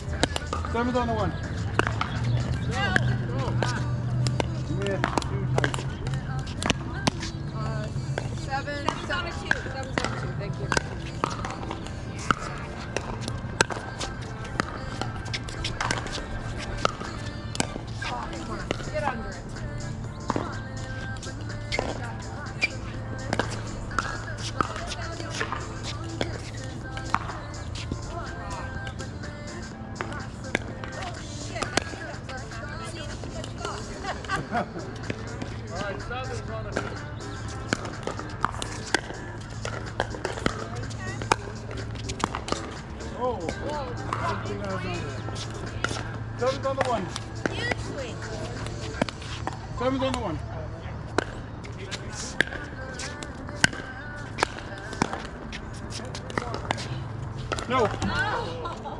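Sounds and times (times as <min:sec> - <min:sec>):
paddles striking pickleballs: 0:00.0 - 0:50.4, 0:51.1 - 0:58.9
background music: 0:00.0 - 0:58.9
distant chatter: 0:00.0 - 0:58.9.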